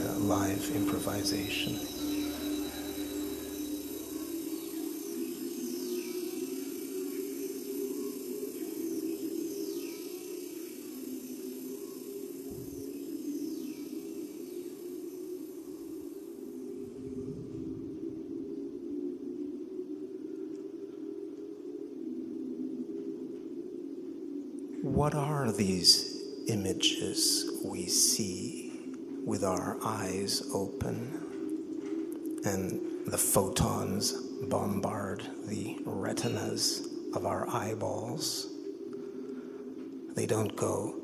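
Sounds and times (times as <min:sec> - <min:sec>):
high falling whistle-like glides: 0:00.0 - 0:41.0
low electronic drone: 0:00.0 - 0:41.0.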